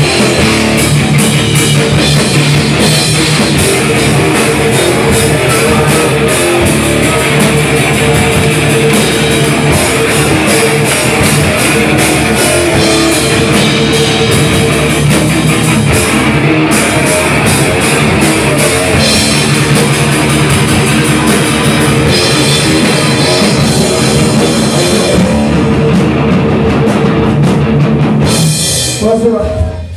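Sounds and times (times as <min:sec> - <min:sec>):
distorted electric guitars: 0:00.0 - 0:29.9
fast drum beats: 0:00.0 - 0:29.9.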